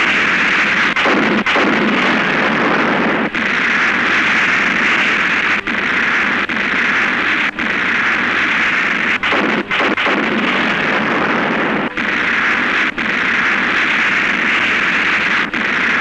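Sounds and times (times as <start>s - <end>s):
explosions: 0.0s - 16.0s.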